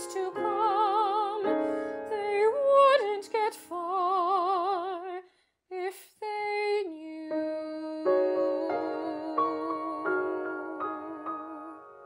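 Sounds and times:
woman singing operatically: 0:00.0 - 0:12.0.

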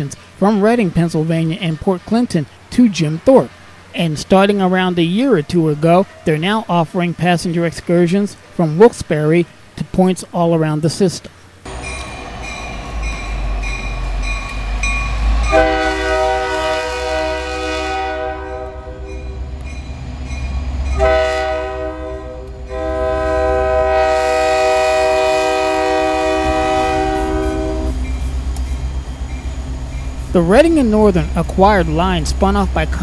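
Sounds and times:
diesel locomotive engine passing: 0:11.6 - 0:33.0
locomotive air horn blasts: 0:15.4 - 0:19.3, 0:20.9 - 0:28.1.

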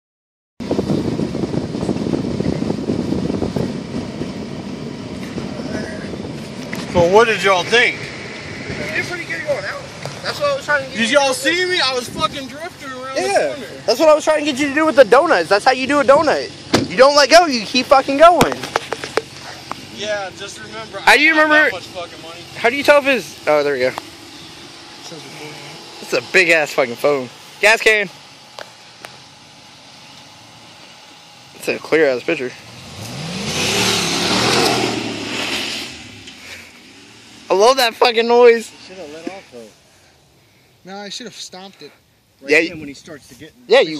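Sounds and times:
rumble and rattle in truck cab: 0:00.6 - 0:39.6.

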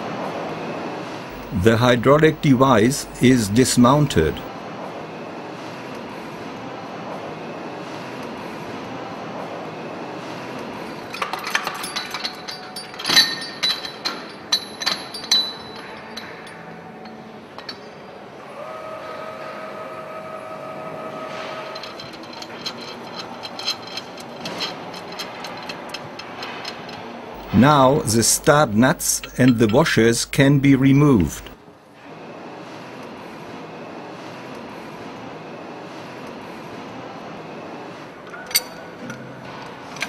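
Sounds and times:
steady hum: 0:01.3 - 0:04.5, 0:27.4 - 0:31.6
steel parts clinking and knocking: 0:11.1 - 0:17.9, 0:21.8 - 0:30.4.

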